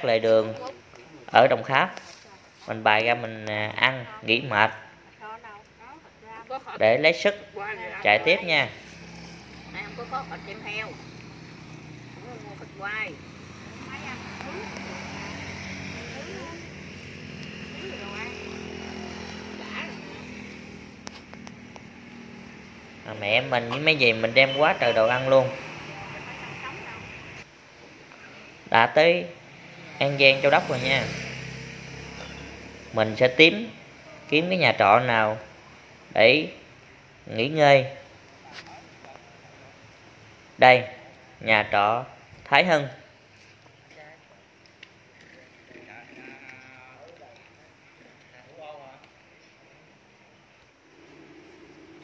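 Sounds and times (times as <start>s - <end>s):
people chattering: 0.0s - 31.0s, 32.2s - 35.0s
vehicle engine humming: 0.0s - 37.3s, 38.0s - 52.0s
road noise: 0.0s - 52.0s.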